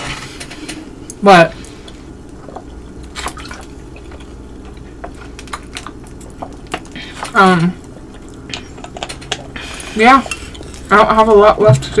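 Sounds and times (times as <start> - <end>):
water sloshing in plastic bottle: 2.6 - 4.3.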